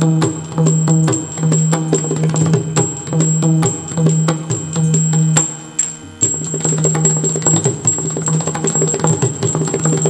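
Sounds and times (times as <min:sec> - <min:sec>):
steady held drone: 0:00.0 - 0:10.0.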